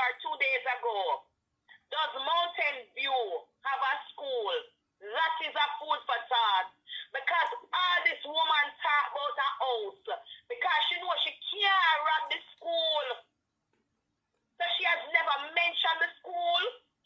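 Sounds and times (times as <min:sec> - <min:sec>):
person talking: 0:00.0 - 0:01.2, 0:01.8 - 0:13.3, 0:14.6 - 0:16.8.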